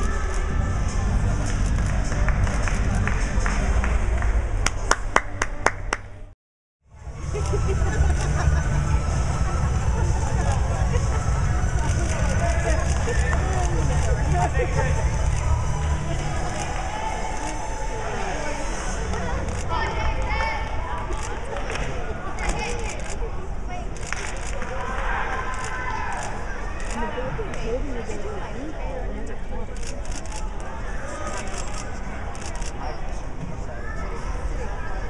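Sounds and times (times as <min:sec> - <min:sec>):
voices chattering in an arena: 0:00.0 - 0:04.9, 0:06.9 - 0:35.0
hands clapping: 0:01.4 - 0:06.1
low rumble of background noise: 0:06.9 - 0:35.0.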